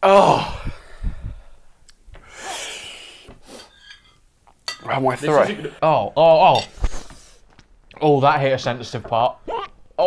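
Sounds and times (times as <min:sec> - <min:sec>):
person breathing out hard: 0:02.2 - 0:03.7.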